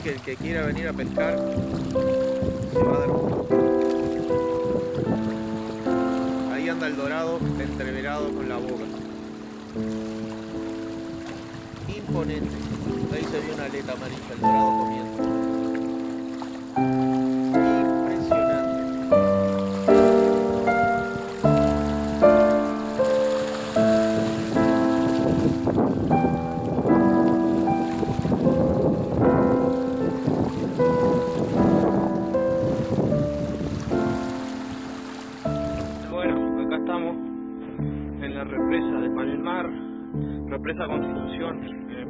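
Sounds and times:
instrumental music with struck chords: 0:00.4 - 0:42.0.

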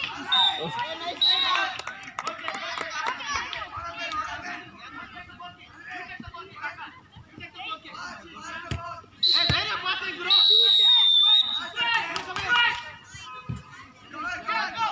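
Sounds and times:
referee's whistle blast: 0:09.2 - 0:11.8.

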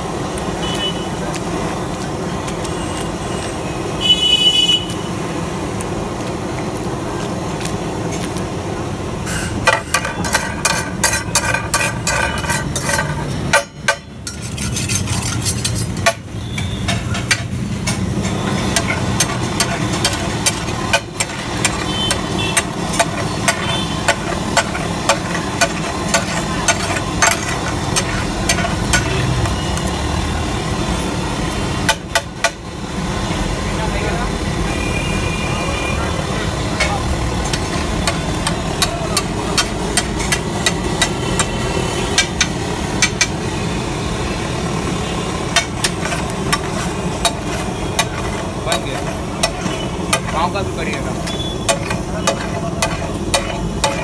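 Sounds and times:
street noise: 0:00.0 - 0:54.0
metal spatula scraping on griddle: 0:09.2 - 0:29.8, 0:36.6 - 0:43.5, 0:44.7 - 0:54.0.

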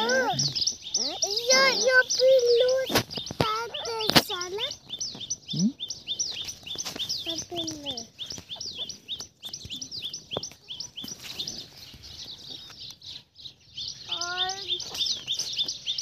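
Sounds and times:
rapid high chirping: 0:00.0 - 0:16.0.

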